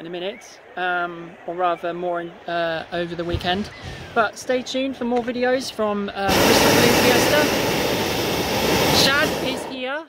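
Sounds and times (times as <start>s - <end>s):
propane burner roaring: 6.3s - 9.9s.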